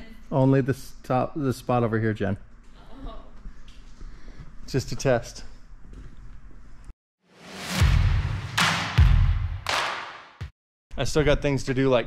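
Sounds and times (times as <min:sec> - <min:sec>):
deep booming hits: 0:07.4 - 0:10.5.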